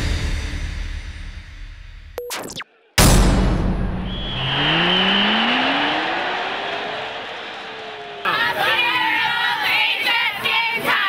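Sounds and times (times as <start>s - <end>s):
rising pitched sweep: 3.5s - 8.2s.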